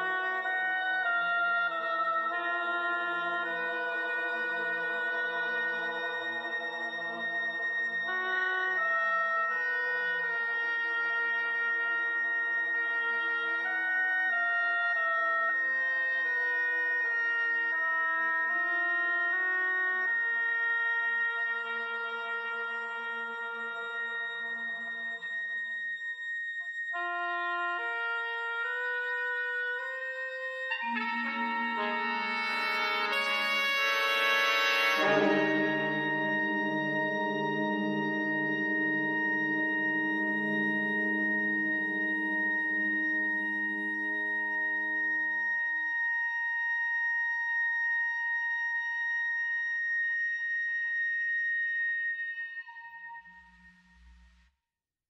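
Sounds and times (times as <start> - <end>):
wind band playing held notes: 30.7 - 43.8.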